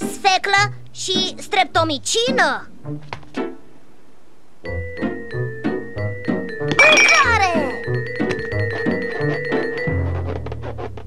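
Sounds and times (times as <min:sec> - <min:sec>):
cartoon background music: 0:00.0 - 0:03.6, 0:04.7 - 0:10.5.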